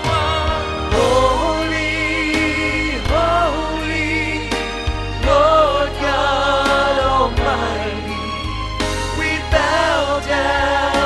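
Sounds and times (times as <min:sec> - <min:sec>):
keyboard accompaniment: 0:00.0 - 0:11.0
singers with microphones: 0:00.0 - 0:11.0
sustained low bass: 0:00.0 - 0:11.0.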